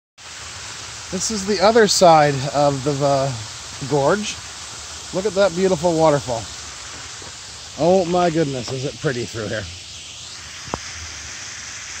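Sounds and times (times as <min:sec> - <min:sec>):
waterfall rushing water: 0:00.2 - 0:12.0.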